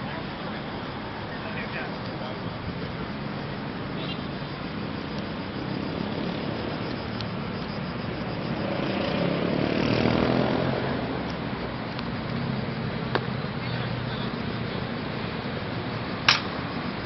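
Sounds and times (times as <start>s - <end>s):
road traffic noise: 0.0s - 17.0s
vehicle passing: 3.2s - 17.0s.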